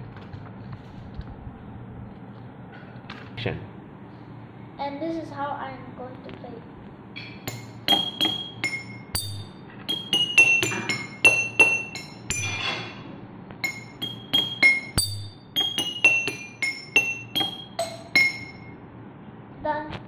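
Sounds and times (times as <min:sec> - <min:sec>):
water glasses struck with stick: 0:07.2 - 0:12.7, 0:13.6 - 0:18.6.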